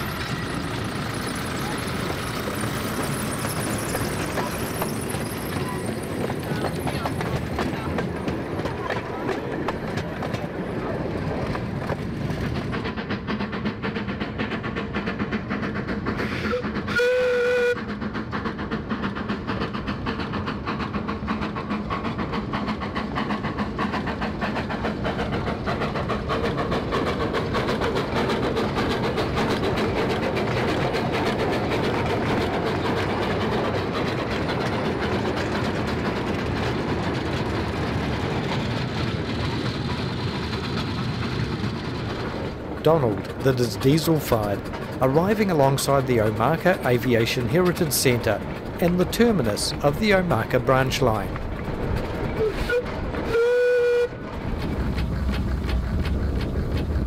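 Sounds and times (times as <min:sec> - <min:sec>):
train wheels clattering on rails: 0:00.0 - 0:57.0
steam whistle blast: 0:16.3 - 0:17.8, 0:52.4 - 0:54.2.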